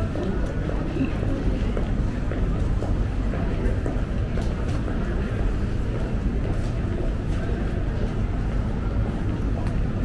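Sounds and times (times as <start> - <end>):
low urban rumble: 0.0 - 10.0.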